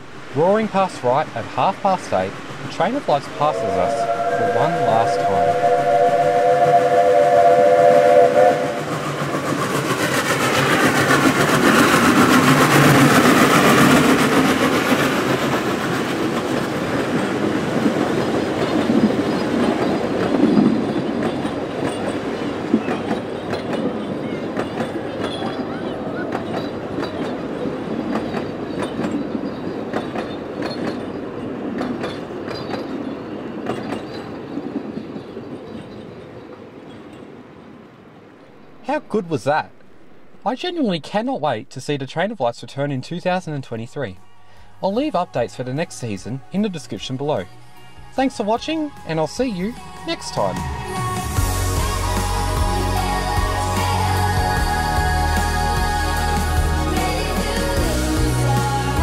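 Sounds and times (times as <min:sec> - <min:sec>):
carriages clicking over rail joints: 0:00.0 - 0:38.1
steam locomotive running past: 0:00.0 - 0:59.0
steam locomotive whistle: 0:03.2 - 0:09.4.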